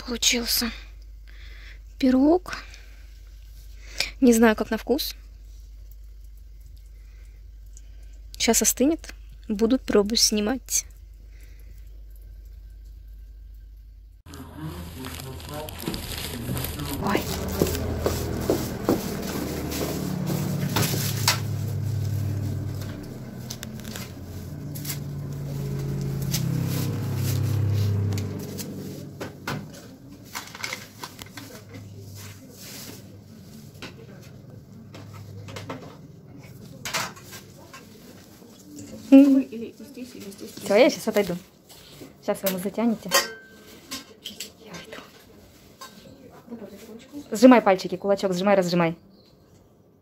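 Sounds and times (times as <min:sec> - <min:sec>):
low hum: 0:05.2 - 0:37.4.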